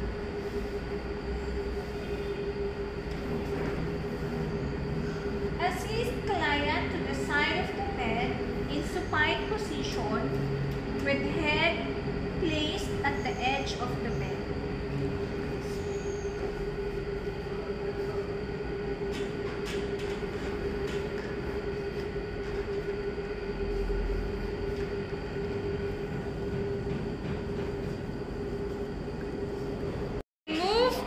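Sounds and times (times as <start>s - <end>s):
mechanical hum: 0.0s - 31.0s.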